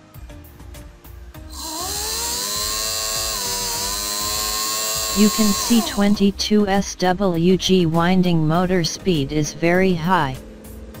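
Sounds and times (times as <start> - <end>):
small electric motor whine: 1.6 - 5.2.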